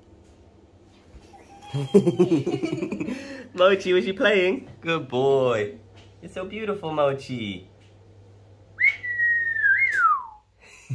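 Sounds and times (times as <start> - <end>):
person whistling a long note: 8.8 - 10.4.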